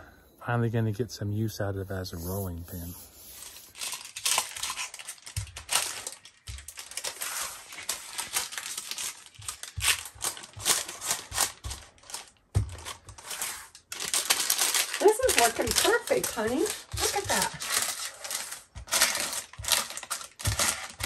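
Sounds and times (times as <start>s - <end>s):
rolling pin crunching mixture: 3.8s - 21.0s.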